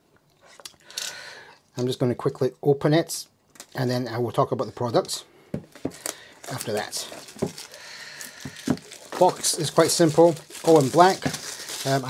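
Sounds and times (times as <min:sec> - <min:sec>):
plastic film rustling: 0:05.7 - 0:12.0.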